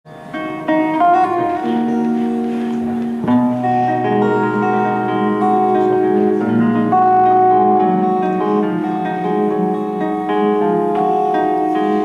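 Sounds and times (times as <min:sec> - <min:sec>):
acoustic guitar picking: 0:00.1 - 0:12.0.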